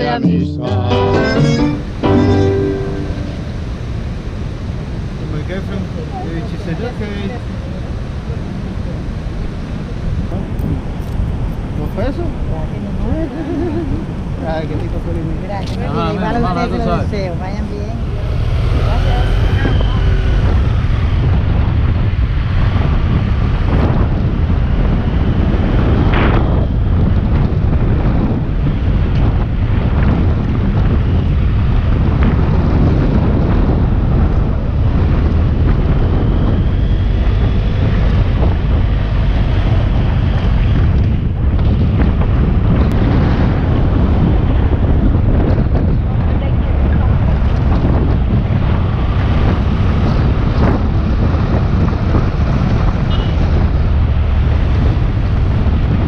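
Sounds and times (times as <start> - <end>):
wind buffeting microphone: 2.9 - 56.0.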